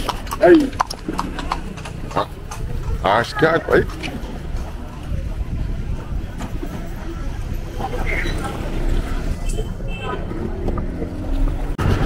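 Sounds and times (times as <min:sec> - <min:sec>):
traffic rumble: 0:00.0 - 0:12.0
wind on microphone: 0:03.8 - 0:09.6.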